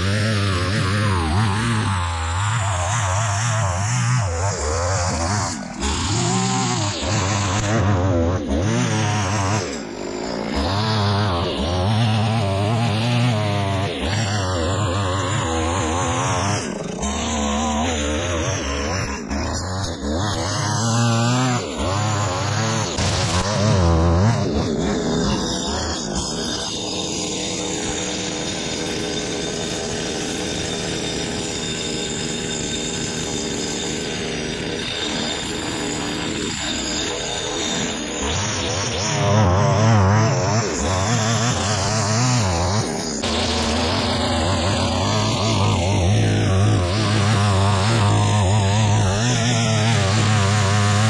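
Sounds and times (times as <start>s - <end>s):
string trimmer cutting grass: 0.0s - 51.0s.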